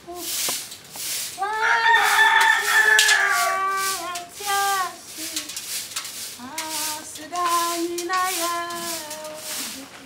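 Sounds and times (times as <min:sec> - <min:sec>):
rooster crowing: 0:01.4 - 0:04.1.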